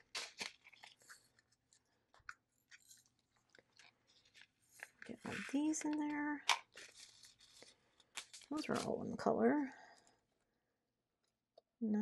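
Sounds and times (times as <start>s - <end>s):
plastic bag crinkling: 0.0s - 9.1s.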